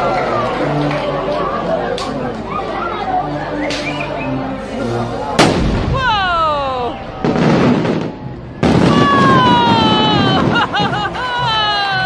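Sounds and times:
firework bang: 5.4s - 6.2s, 7.2s - 10.8s
firework crackling: 5.4s - 11.8s.

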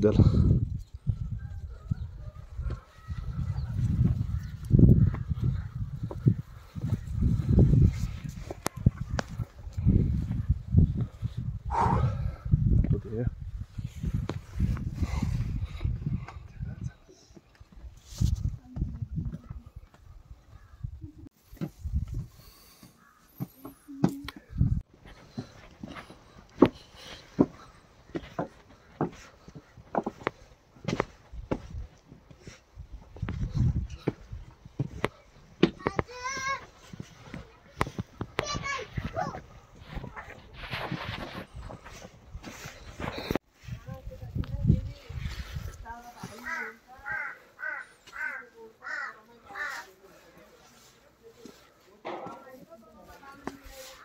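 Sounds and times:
footsteps on stone steps: 2.6s - 11.2s, 17.3s - 20.4s, 21.4s - 43.5s, 45.2s - 54.0s
crow cawing: 22.9s - 23.8s, 46.3s - 49.9s.

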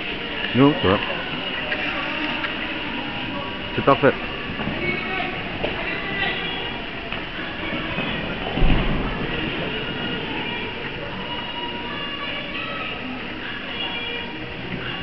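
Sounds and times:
faint indistinct voices: 0.0s - 15.0s
reverberant hall noise: 0.0s - 15.0s
low thump: 8.4s - 10.0s.

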